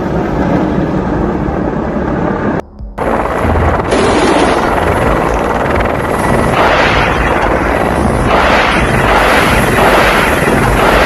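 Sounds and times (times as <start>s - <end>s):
helicopter rotor and turbine noise: 0.0s - 11.0s.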